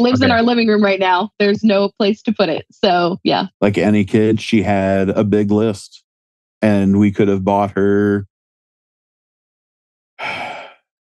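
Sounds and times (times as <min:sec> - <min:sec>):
man speaking: 0:00.1 - 0:00.5, 0:03.6 - 0:06.0, 0:06.6 - 0:08.2, 0:10.2 - 0:10.8
man breathing: 0:10.2 - 0:10.8.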